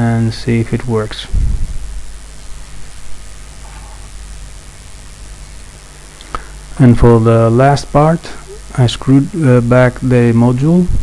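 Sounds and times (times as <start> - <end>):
speaker hiss with low hum: 0.0 - 11.0.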